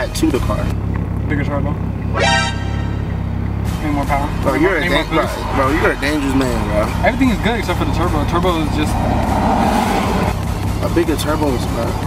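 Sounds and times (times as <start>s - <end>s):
car engine heard from cabin: 0.0s - 12.0s
steady low drone: 0.0s - 12.0s.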